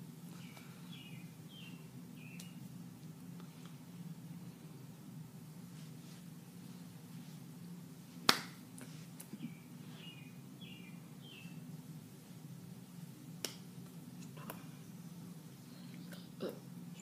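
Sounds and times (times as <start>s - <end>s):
steady low hum: 0.0s - 17.0s
hands smacking: 8.2s - 9.4s, 13.4s - 13.7s.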